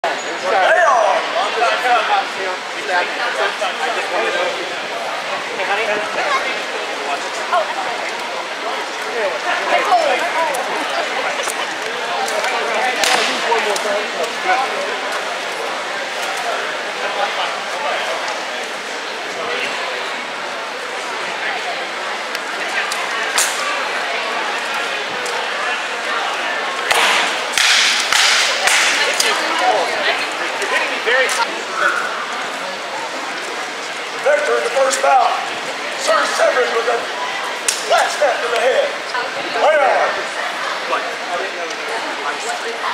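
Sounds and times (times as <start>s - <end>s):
crowd chatter echoing in a hall: 0.0s - 42.9s.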